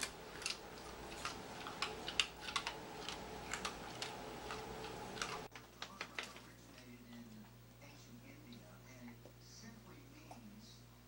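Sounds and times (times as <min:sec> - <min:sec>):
dog claws clicking: 0:00.0 - 0:06.5.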